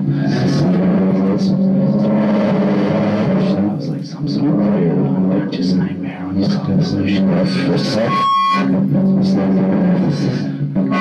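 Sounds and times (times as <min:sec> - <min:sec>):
loud low electronic drone: 0:00.0 - 0:11.0.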